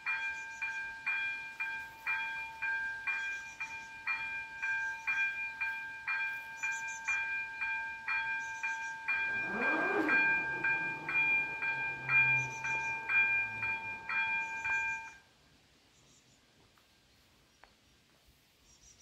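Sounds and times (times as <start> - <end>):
level crossing bells ringing: 0.0 - 15.2
barrier motor whirring: 9.1 - 15.2.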